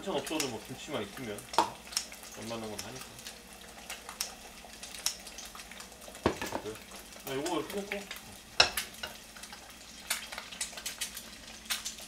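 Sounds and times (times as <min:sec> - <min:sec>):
egg sizzling in a pan: 0:00.0 - 0:12.0.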